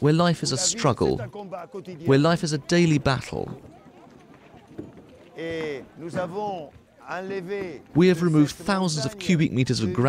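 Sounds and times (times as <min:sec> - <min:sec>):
low background bustle: 0:00.0 - 0:10.0.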